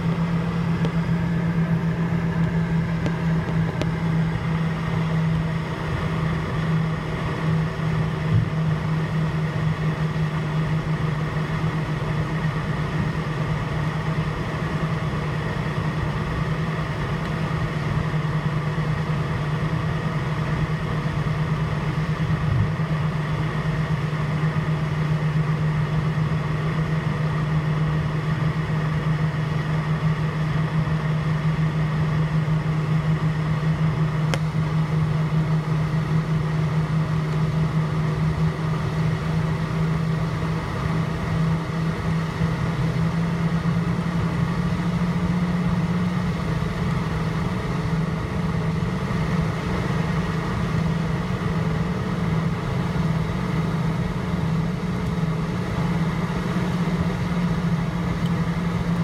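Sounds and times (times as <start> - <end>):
jet engines droning: 0.0 - 59.0.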